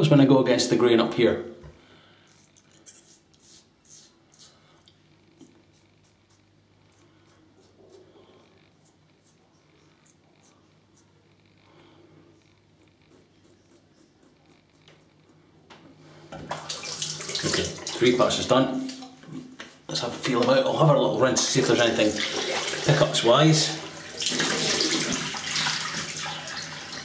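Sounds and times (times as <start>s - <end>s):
razor scraping stubble: 2.3s - 4.6s, 5.3s - 11.8s, 12.4s - 15.4s.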